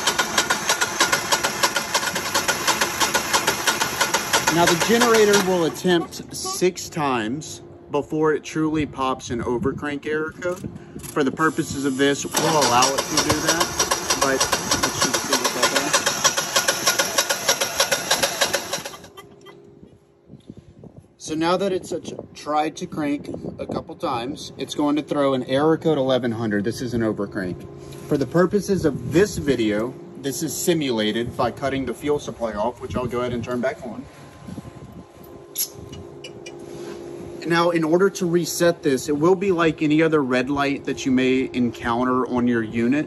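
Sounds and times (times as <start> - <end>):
generator starter cranking engine: 0.0 - 6.0, 11.0 - 19.3.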